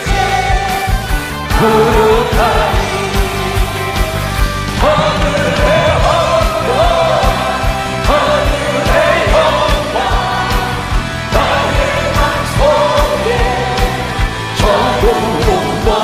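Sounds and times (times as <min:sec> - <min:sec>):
band with kick drum beat: 0:00.0 - 0:16.0
choir singing a hymn: 0:00.0 - 0:16.0
man singing lead: 0:00.0 - 0:16.0.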